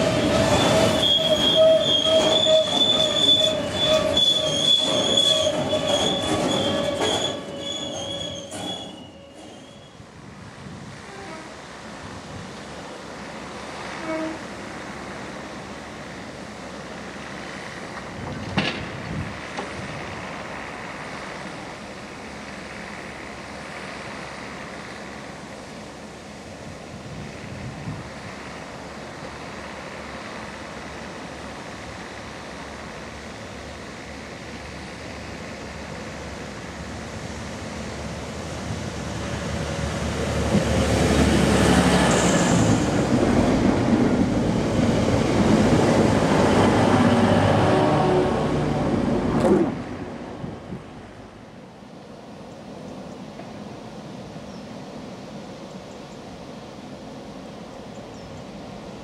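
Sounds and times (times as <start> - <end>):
diesel train passing: 0.0 - 59.0.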